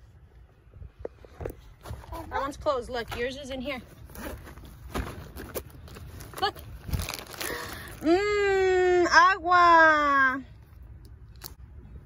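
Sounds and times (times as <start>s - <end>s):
plastic bottle crinkling: 4.0s - 8.1s.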